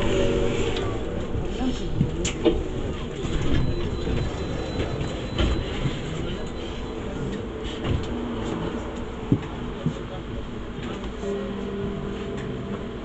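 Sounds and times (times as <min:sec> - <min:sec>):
bus engine idling: 0:00.0 - 0:13.0.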